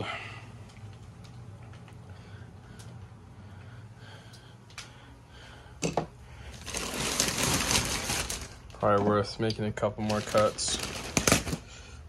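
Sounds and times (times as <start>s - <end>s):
plastic wrap crinkling: 6.4s - 11.9s.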